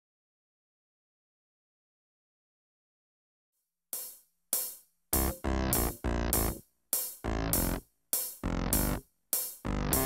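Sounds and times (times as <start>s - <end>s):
drum machine hi-hat hits: 4.0s - 10.0s.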